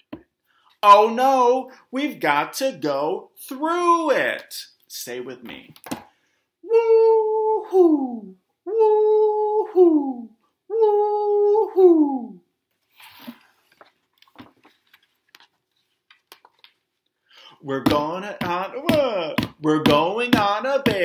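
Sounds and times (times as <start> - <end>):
man imitating wind: 6.6 - 12.4
book pages turning: 12.7 - 17.0.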